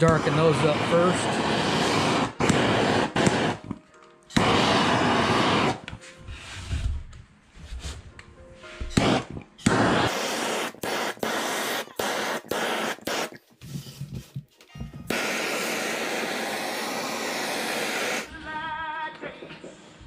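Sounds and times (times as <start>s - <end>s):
gas torch flame hissing: 0.0s - 5.9s, 9.0s - 14.3s, 15.1s - 18.3s.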